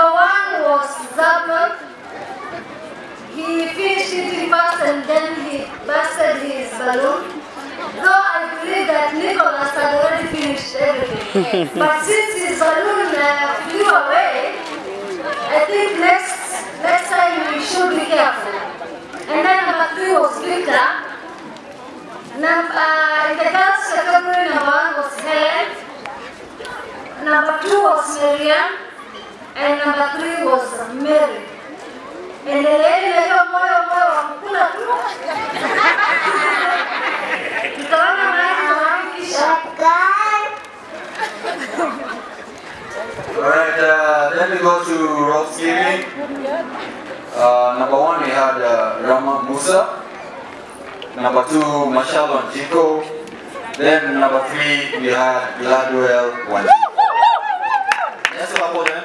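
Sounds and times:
woman speaking into a microphone: 0.0s - 1.9s, 3.3s - 7.4s, 8.0s - 14.6s, 15.3s - 18.6s, 19.2s - 21.2s, 22.3s - 25.8s, 27.2s - 28.9s, 32.4s - 35.5s, 37.6s - 40.6s
crowd chatter: 0.0s - 59.0s
woman talking into a microphone: 8.0s - 14.6s, 32.5s - 35.5s, 37.6s - 40.6s.

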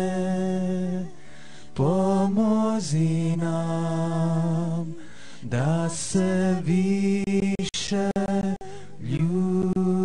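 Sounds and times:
person chanting devotional song: 0.0s - 10.0s.

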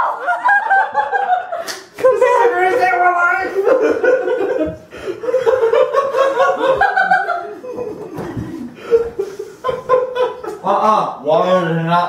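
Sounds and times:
people laughing loudly: 0.0s - 11.0s.

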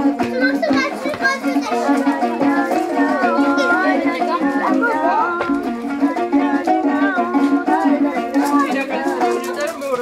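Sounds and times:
children shouting and calling out: 0.0s - 7.2s
plucked-string music: 0.0s - 10.0s.

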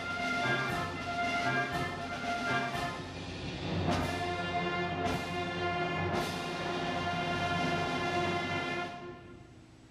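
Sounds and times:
concert band holding a chord: 0.0s - 9.6s.

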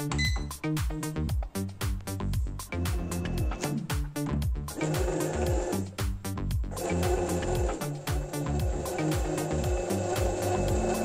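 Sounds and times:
upbeat background music: 0.0s - 11.0s
high electronic beep: 0.1s - 0.5s.

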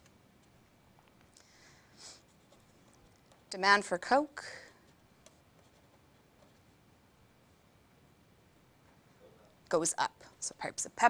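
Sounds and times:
pen scratching on paper: 4.9s - 6.8s.

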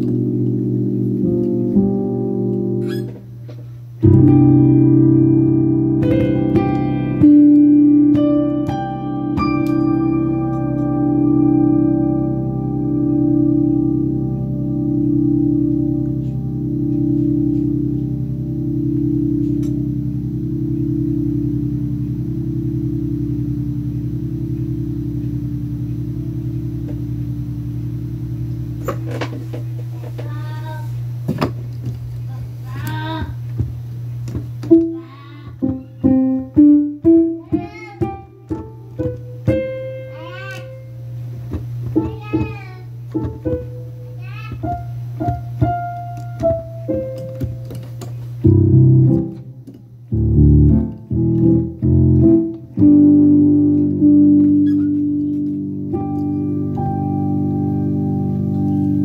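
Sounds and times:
keyboard chord with tremolo: 0.0s - 3.2s, 4.0s - 29.2s, 43.0s - 59.0s
held low bass note: 4.0s - 29.1s.

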